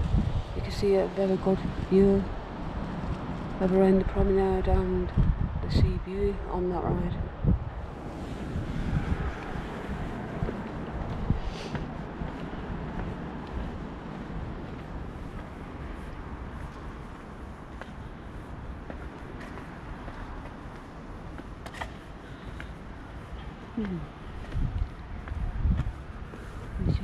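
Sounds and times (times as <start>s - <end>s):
wind rumbling on microphone: 0.0s - 27.0s.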